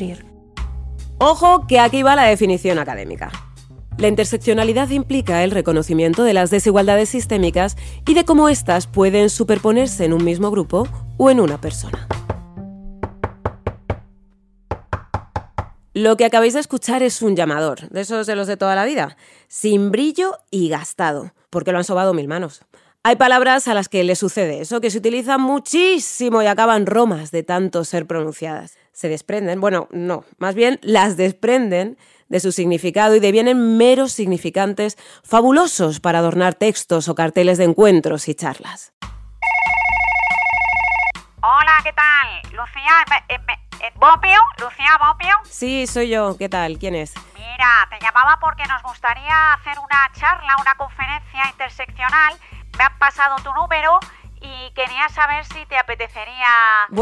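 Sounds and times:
telephone ringing: 0:39.4 - 0:41.2.

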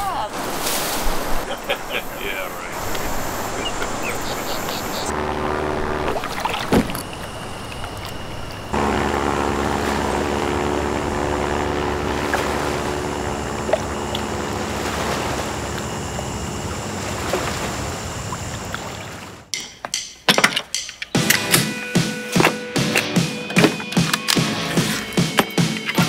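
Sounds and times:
propeller plane engine droning: 0:00.1 - 0:19.6
short engine hum: 0:01.2 - 0:19.5.

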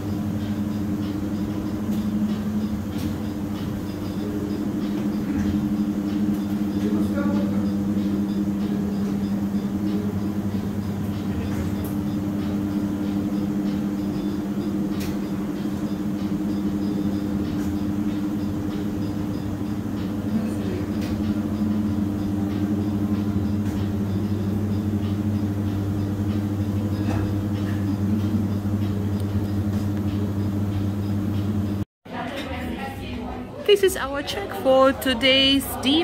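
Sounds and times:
low mechanical hum: 0:00.0 - 0:36.0.

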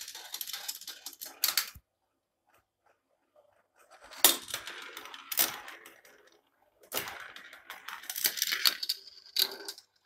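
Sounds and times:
marbles clattering through plastic track: 0:00.0 - 0:01.8, 0:04.0 - 0:10.0
marbles rolling on metal rails: 0:00.0 - 0:01.8, 0:03.8 - 0:10.0.

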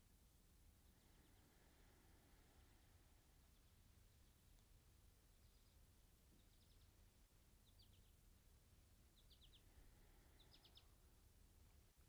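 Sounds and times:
bird chirping: 0:05.3 - 0:07.0, 0:07.6 - 0:08.2, 0:09.1 - 0:11.0.

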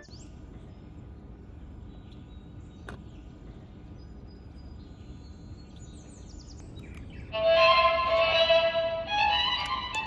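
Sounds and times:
bird chirps: 0:00.0 - 0:01.0, 0:01.8 - 0:07.5
violin melody from toy gramophone: 0:07.4 - 0:10.0.

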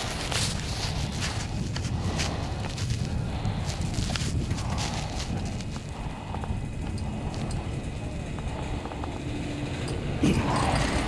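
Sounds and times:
chairlift low rumble: 0:00.0 - 0:11.0.

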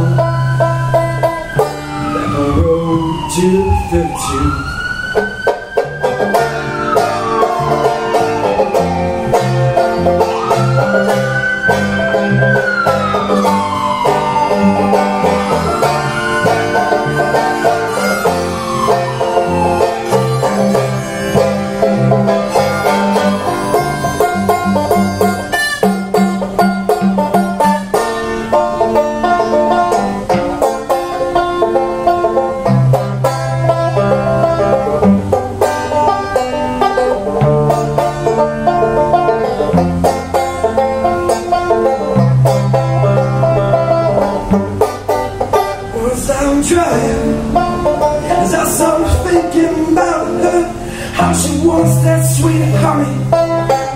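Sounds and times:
banjo picking: 0:00.0 - 0:03.6, 0:05.1 - 0:53.9
strummed acoustic guitar: 0:00.0 - 0:03.6, 0:05.8 - 0:53.9
siren wailing: 0:00.0 - 0:26.2
low bass notes: 0:00.0 - 0:53.9.

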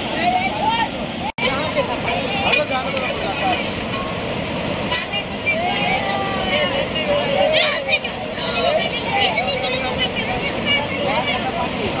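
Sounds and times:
river water rushing over rocks: 0:00.0 - 0:12.0.

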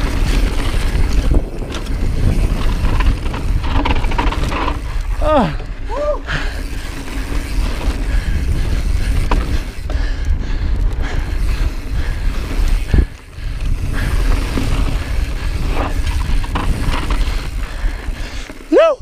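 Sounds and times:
bike tyres rolling over rocks: 0:00.0 - 0:19.0
wind rumble on microphone: 0:00.0 - 0:19.0.

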